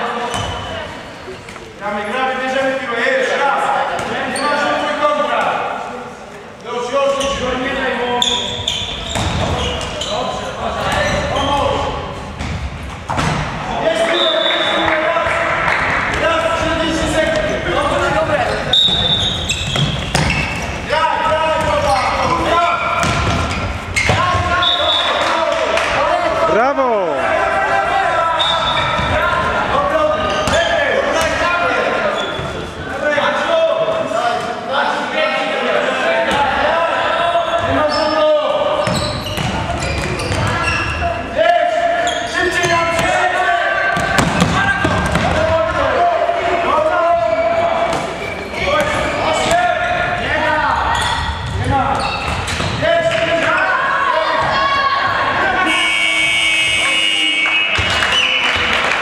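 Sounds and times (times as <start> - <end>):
ball bouncing on hall floor: 9.0 - 10.0, 12.4 - 13.6, 15.6 - 24.6, 38.8 - 40.8, 44.0 - 45.6
players calling out: 13.5 - 58.6.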